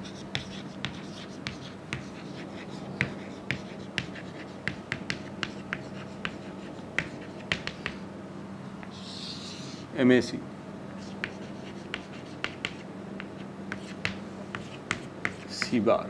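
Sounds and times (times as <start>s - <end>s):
chalk tapping on chalkboard: 0.1s - 2.4s, 3.0s - 8.0s, 11.1s - 15.8s.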